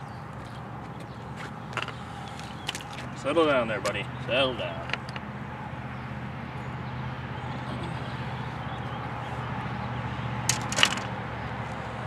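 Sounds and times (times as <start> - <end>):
sharp clicks and rattles: 4.7 - 5.3, 10.5 - 11.2.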